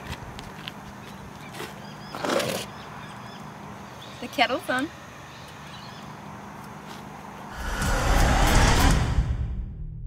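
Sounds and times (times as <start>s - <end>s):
deep rumbling whoosh: 7.5s - 10.0s.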